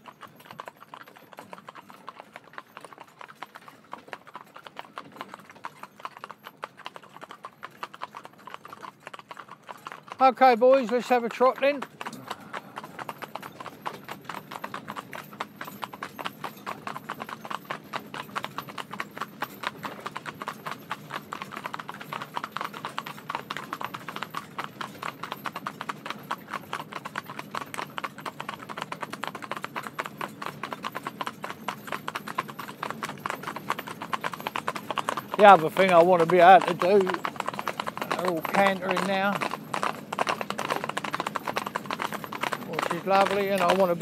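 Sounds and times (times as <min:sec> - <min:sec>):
hooves trotting on tarmac: 0:00.0 - 0:44.0.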